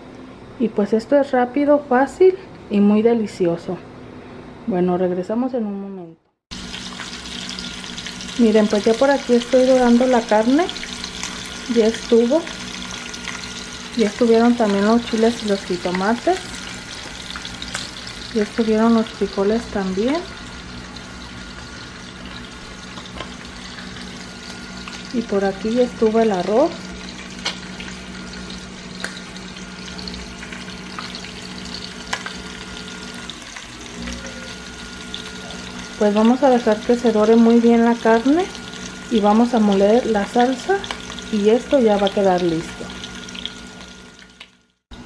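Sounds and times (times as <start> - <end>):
meat sizzling in a pot: 6.5 - 44.9.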